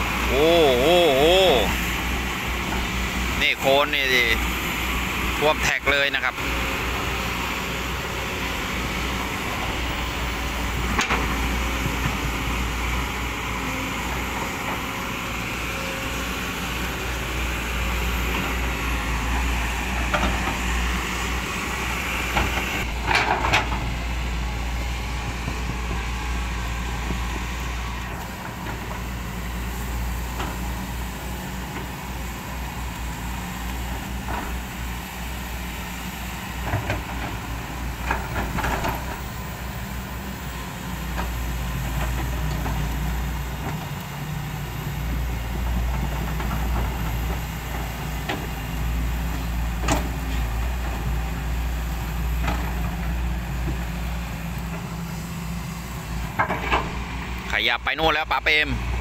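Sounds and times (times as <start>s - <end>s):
excavator diesel engines running: 0.0s - 59.0s.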